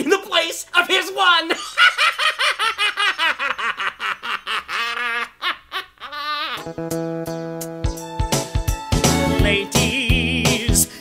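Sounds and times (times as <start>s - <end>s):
theatrical villain laugh: 1.5s - 6.8s.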